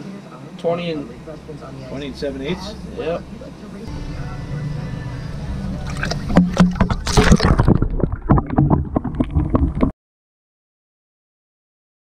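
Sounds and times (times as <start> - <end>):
fish splashing in water: 5.9 - 9.9.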